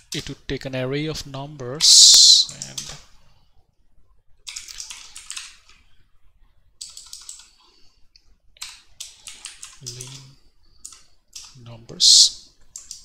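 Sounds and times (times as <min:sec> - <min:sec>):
keyboard typing: 0:04.5 - 0:05.8, 0:06.8 - 0:07.6, 0:08.6 - 0:13.0.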